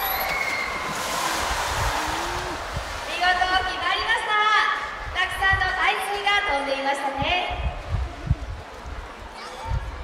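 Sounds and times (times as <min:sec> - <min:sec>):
orca splashing into water: 0:00.0 - 0:03.9
water spray rushing: 0:00.0 - 0:05.0.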